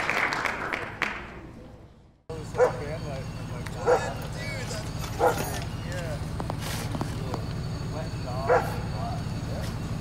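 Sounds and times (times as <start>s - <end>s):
dog barking: 2.6s - 2.8s, 3.8s - 4.2s, 5.2s - 5.6s, 8.5s - 8.8s.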